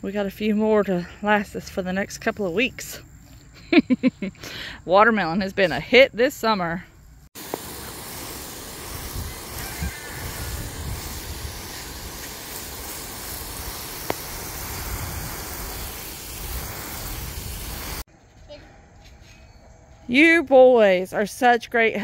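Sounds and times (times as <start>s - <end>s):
hose nozzle spraying mist: 7.4s - 18.1s.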